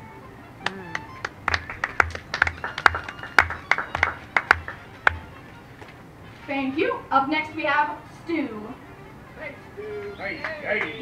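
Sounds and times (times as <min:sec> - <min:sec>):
small audience clapping: 0:00.6 - 0:05.4, 0:10.4 - 0:11.0.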